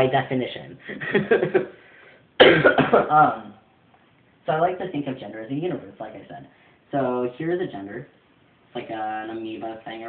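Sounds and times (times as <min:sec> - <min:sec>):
man laughing: 0:00.9 - 0:01.7
man coughing: 0:02.4 - 0:03.2.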